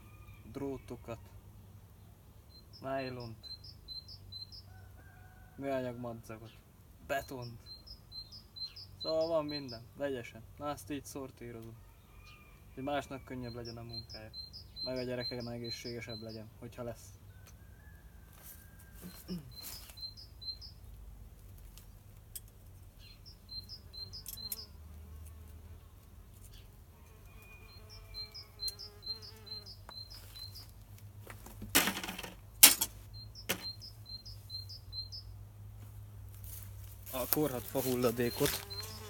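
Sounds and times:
small bird chirping: 2.5 - 4.8, 7.2 - 9.8, 13.4 - 16.5, 19.0 - 21.0, 22.8 - 24.8, 26.4 - 30.8, 33.1 - 35.4, 37.7 - 39.0.

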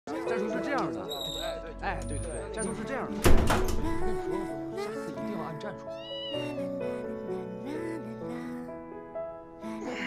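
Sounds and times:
cat meowing: 5.9 - 6.6.

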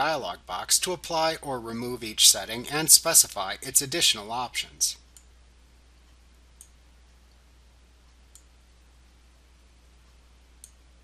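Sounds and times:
low steady hum: 0.0 - 11.0
computer mouse clicks: 8.3 - 8.5, 10.6 - 10.8.

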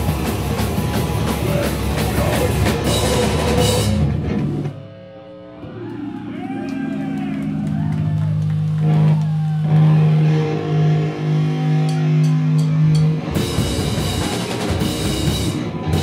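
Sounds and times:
metal band playing: 0.0 - 4.9, 5.6 - 16.0
electric guitar sustained bending notes: 0.5 - 16.0.

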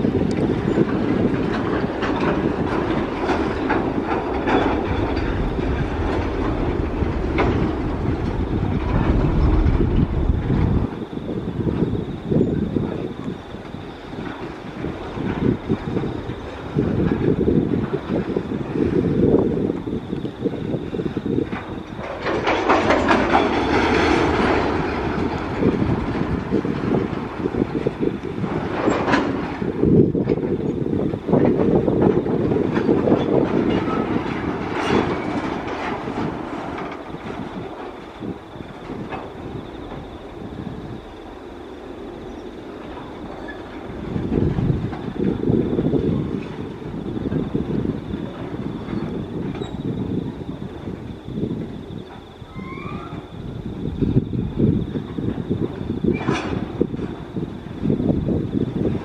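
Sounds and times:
train wheels rumbling: 0.0 - 59.0
wheels clicking over rail joints: 0.0 - 59.0.

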